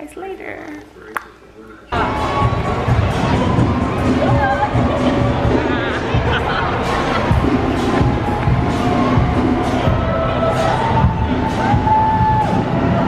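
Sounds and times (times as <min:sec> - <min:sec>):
crowd cheering and shouting: 0:01.9 - 0:13.0
loud music: 0:01.9 - 0:13.0.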